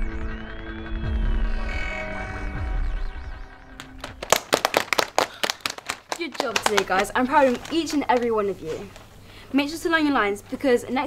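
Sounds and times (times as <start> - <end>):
children clapping: 3.8 - 9.0.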